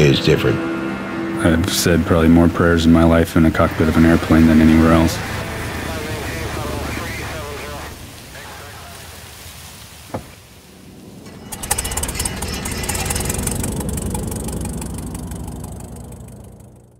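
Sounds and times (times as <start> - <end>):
steady low hum: 11.2 - 16.9
piston engine running: 11.3 - 16.9.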